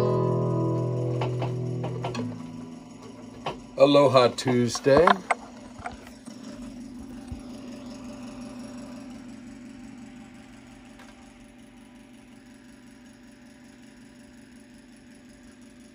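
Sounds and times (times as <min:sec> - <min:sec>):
low mechanical hum: 0:00.0 - 0:15.9.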